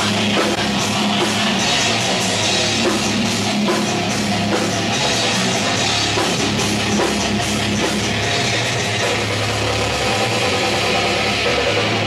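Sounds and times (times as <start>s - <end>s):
metal band playing loud: 0.0s - 12.0s.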